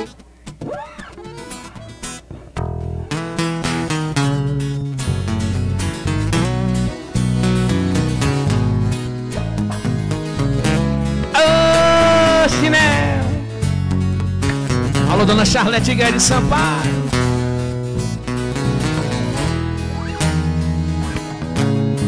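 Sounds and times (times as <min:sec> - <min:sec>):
bass: 0:00.0 - 0:22.0
plucked and strummed guitar: 0:00.0 - 0:22.0.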